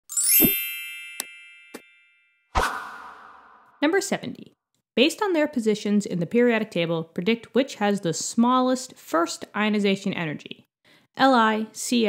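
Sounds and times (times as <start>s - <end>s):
bright chime ringing: 0.1s - 2.5s
rising sweep: 2.6s - 3.8s.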